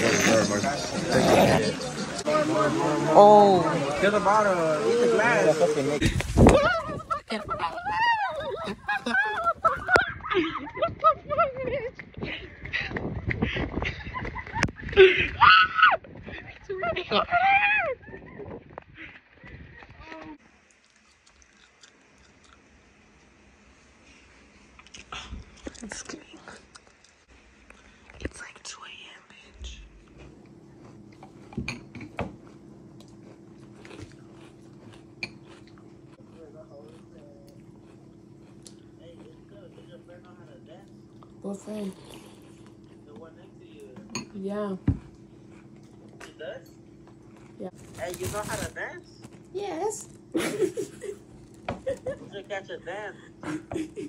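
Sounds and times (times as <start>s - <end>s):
women whooping and squealing: 6.5s - 10.7s, 15.0s - 16.1s, 17.1s - 18.4s
person chewing: 20.6s - 22.8s, 24.7s - 28.1s, 30.0s - 43.1s, 45.0s - 46.2s, 47.0s - 47.6s.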